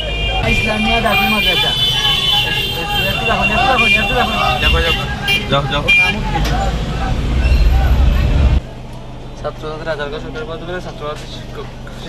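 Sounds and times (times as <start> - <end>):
people talking: 0.0 - 8.6
low rumble: 6.3 - 8.8.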